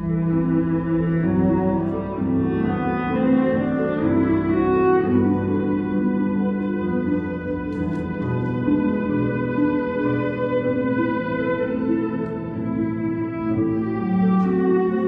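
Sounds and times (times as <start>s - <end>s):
slow cello melody with strings: 0.0s - 15.0s.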